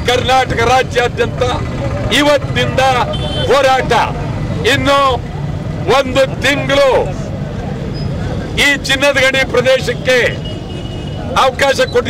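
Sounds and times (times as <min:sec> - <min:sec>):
man speaking loudly: 0:00.0 - 0:05.2, 0:05.8 - 0:07.3, 0:08.6 - 0:10.4, 0:11.3 - 0:12.0.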